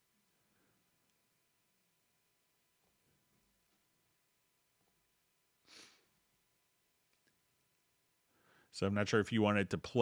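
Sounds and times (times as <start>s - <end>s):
breath out close to microphone: 5.6s - 6.1s, 8.3s - 8.7s.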